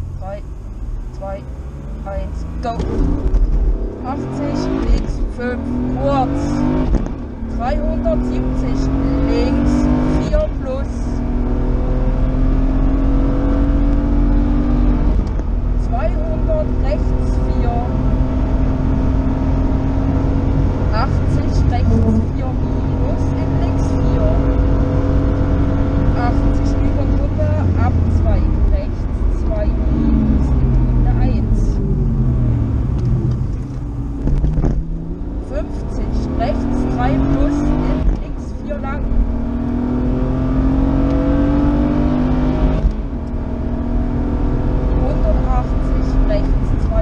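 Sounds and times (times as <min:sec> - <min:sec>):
rally car engine revving: 0:00.0 - 0:47.0.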